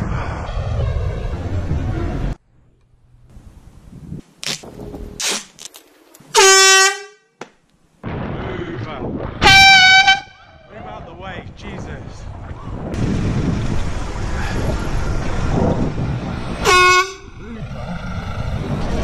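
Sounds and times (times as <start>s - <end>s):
road and wind noise: 0.0s - 6.4s, 8.9s - 19.0s
bicycle air horn blasts: 6.3s - 7.4s, 9.4s - 10.4s, 16.6s - 17.3s.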